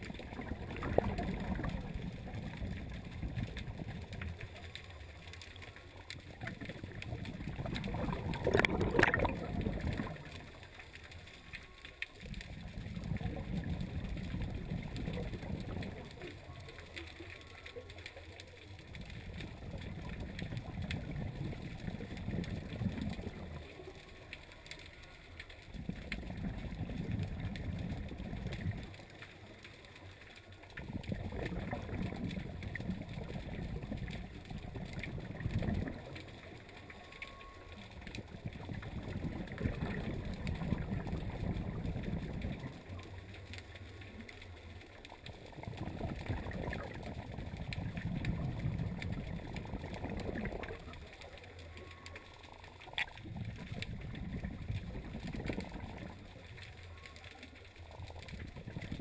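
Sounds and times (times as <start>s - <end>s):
exhaled bubbles gurgling underwater: 0.0s - 59.0s.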